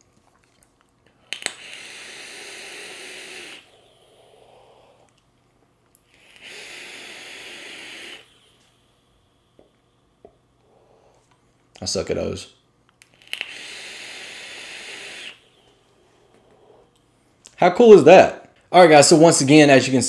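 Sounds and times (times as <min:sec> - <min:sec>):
faint exhaled puffs: 0:01.1 - 0:05.1
soft breath: 0:01.1 - 0:05.2, 0:06.1 - 0:11.5, 0:13.3 - 0:17.2
airy hiss of vape drag: 0:01.2 - 0:05.1, 0:06.1 - 0:08.9, 0:13.1 - 0:16.9.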